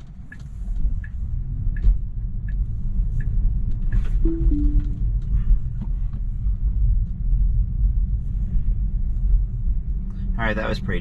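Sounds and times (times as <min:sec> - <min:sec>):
turn signal ticking: 0:00.0 - 0:05.3
road and tyre rumble: 0:00.0 - 0:11.0.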